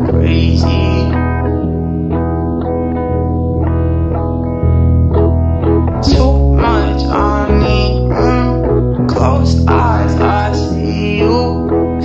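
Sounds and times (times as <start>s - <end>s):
electric guitar picking notes: 0.0s - 12.0s
steady bass: 0.0s - 12.0s.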